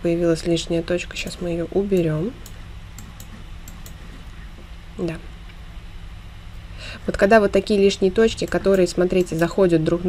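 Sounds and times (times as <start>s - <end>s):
steady low hum: 0.0s - 10.0s
computer mouse clicks: 1.9s - 4.0s, 8.4s - 9.5s.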